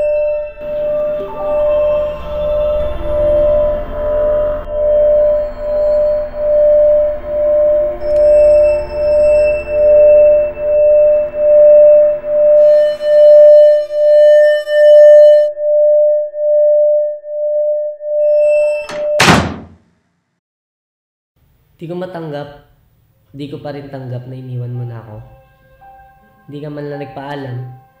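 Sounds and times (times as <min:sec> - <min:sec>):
higher held notes: 0:00.0 - 0:14.3
pulsing ambient tone: 0:00.0 - 0:18.8
single loud hit: 0:18.9 - 0:19.9.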